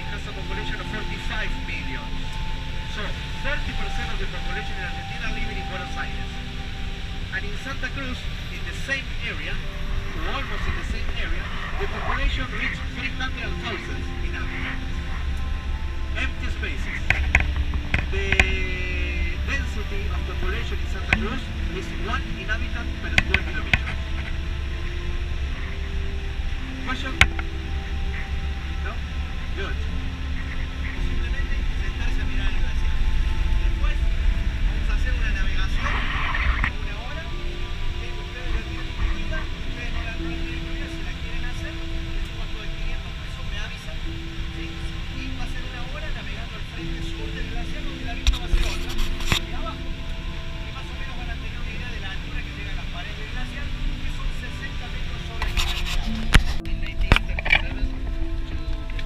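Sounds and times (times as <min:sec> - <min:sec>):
bus engine and tyres rumble: 0:00.0 - 0:53.4
faint hum: 0:00.0 - 0:59.0.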